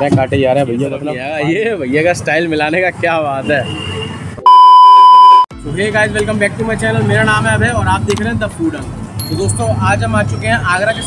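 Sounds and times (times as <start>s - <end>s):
electronic bleep tone: 4.4s - 5.5s.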